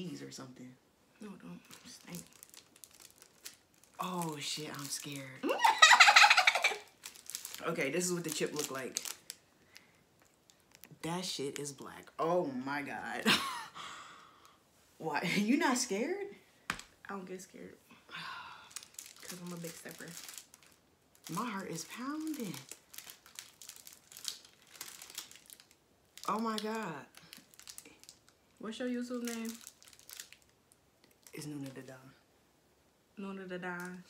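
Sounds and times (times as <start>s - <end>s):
foil chip packet crinkling: 1.6s - 12.0s, 18.7s - 31.9s.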